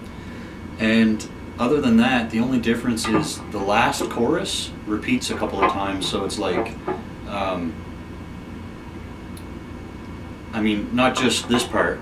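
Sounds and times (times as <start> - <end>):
guitar amplifier hum and hiss: 0.0 - 12.0.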